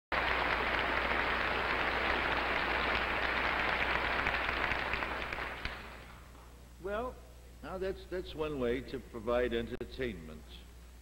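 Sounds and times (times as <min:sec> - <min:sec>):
audience applauding: 0:00.1 - 0:06.1.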